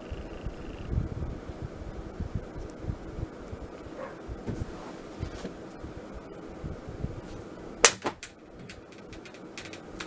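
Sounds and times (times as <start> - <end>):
electric fan running: 0.0 - 10.0
sharp clicks: 7.8 - 10.0.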